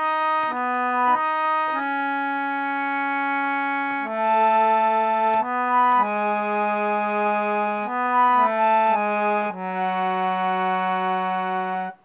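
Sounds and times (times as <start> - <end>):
harmonium melody: 0.0 - 12.0.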